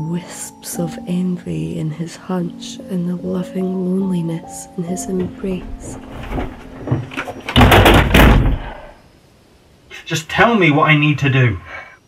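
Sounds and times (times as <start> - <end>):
knocks: 5.0 - 8.9.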